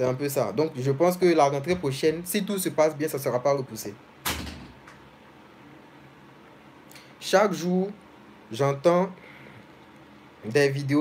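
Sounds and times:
faint background hiss: 0:00.0 - 0:11.0.

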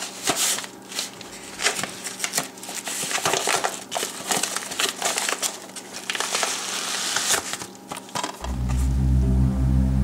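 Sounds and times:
bubble mailer crackling and crinkling: 0:00.0 - 0:08.5.

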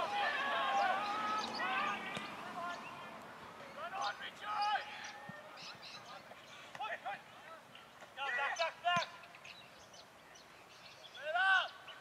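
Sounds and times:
distant shouted calls: 0:00.0 - 0:12.0.

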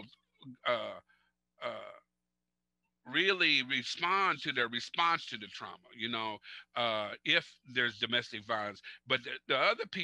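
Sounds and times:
man saying uh: 0:00.0 - 0:01.0, 0:01.6 - 0:02.0, 0:03.1 - 0:10.0.

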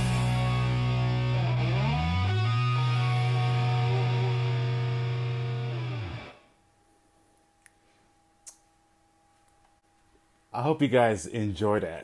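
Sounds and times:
distorted electric guitar chord ringing: 0:00.0 - 0:06.4.

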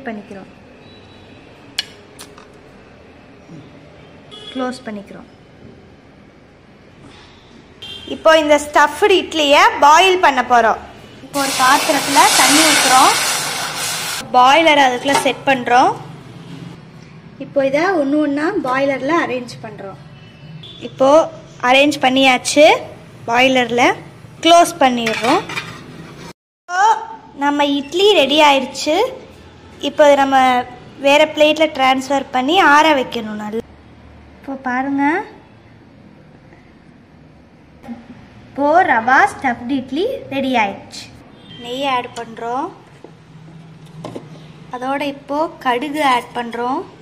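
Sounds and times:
woman speaking: 0:08.1 - 0:13.2, 0:14.2 - 0:16.0, 0:17.4 - 0:20.1, 0:26.7 - 0:33.6, 0:34.4 - 0:35.4, 0:37.8 - 0:42.8, 0:44.8 - 0:47.0
metal lid clatter and scrape: 0:25.0 - 0:26.3.

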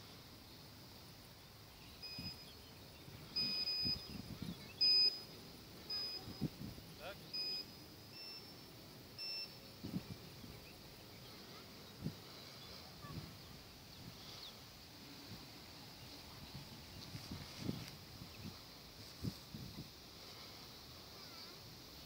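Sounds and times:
short high electronic beeps: 0:03.4 - 0:04.1, 0:04.8 - 0:05.2, 0:07.4 - 0:08.5, 0:09.2 - 0:09.6.

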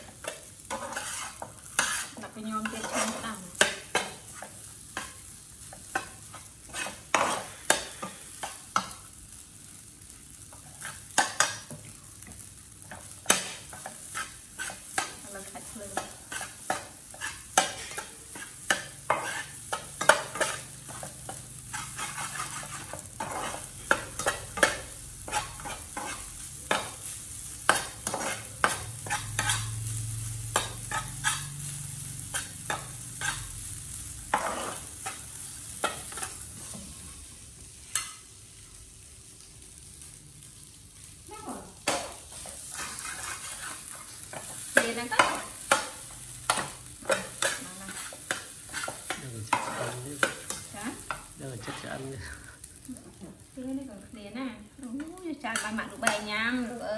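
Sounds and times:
metal spatula scraping a pan: 0:00.0 - 0:09.0, 0:12.9 - 0:37.1, 0:41.8 - 0:52.0, 0:55.4 - 0:56.8
rice sizzling in a pan: 0:00.0 - 0:56.9.

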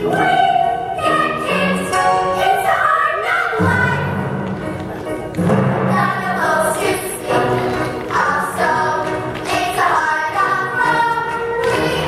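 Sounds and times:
music with singing voices: 0:00.0 - 0:12.0.

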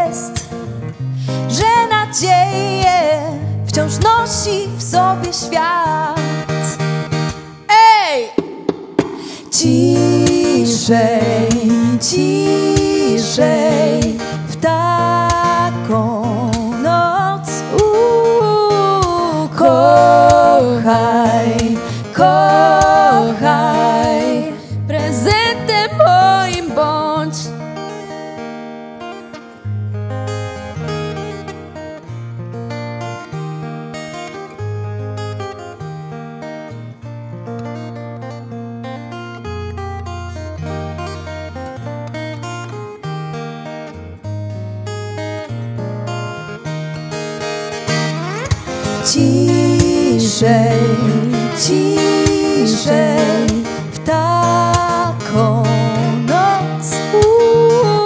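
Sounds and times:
women singing with vibrato: 0:00.0 - 0:00.6, 0:01.5 - 0:06.8, 0:07.7 - 0:08.4, 0:09.1 - 0:27.5, 0:48.7 - 0:58.0
acoustic guitar plucking: 0:00.0 - 0:58.0.

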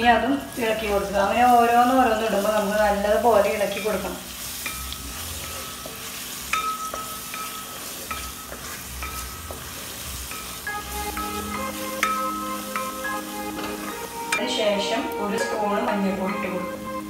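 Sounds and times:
vegetables sizzling in hot oil: 0:00.0 - 0:17.0
wooden spatula stirring: 0:00.6 - 0:15.5.

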